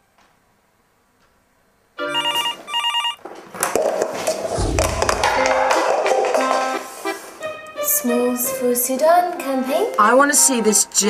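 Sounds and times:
desk telephone ringing: 2.0 - 3.2.

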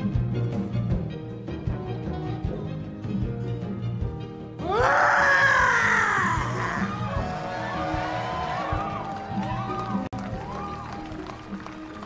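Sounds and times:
long high-pitched yell: 4.6 - 7.0.

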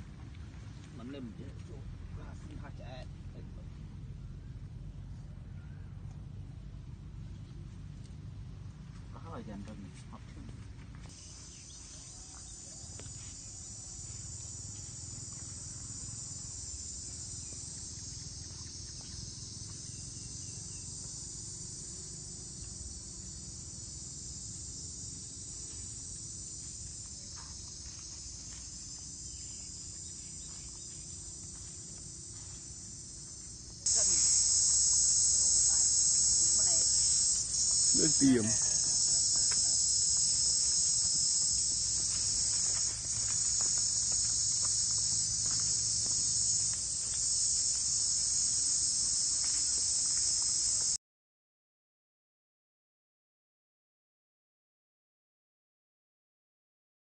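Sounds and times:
insects shrill drone: 11.1 - 51.0.

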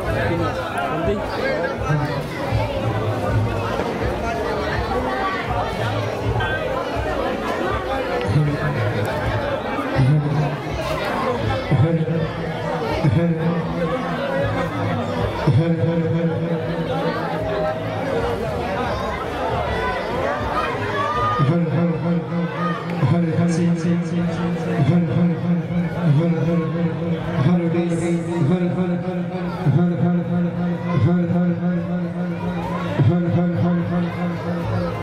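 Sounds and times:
background music: 0.0 - 35.0
men talking at once: 0.0 - 35.0.

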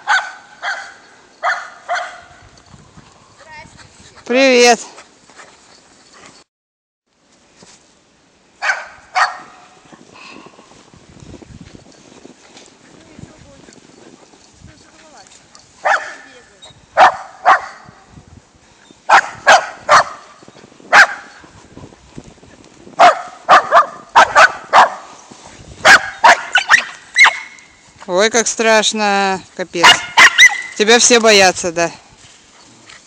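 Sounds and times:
dog barking sharply: 0.0 - 2.4, 8.6 - 9.6, 15.8 - 16.2, 17.0 - 17.9, 19.1 - 20.2, 20.9 - 21.3, 23.0 - 25.0, 25.8 - 27.6, 29.8 - 30.8.

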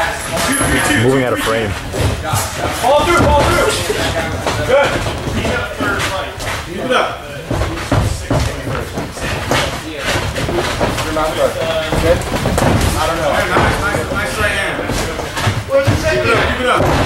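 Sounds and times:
feet moving on canvas: 0.0 - 17.0
people talking: 0.0 - 17.0.

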